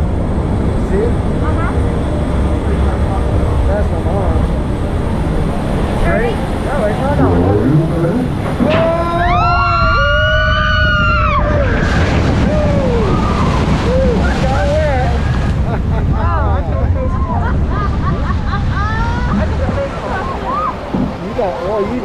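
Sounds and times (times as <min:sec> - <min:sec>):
boat rushing through water: 0:11.0 - 0:22.0.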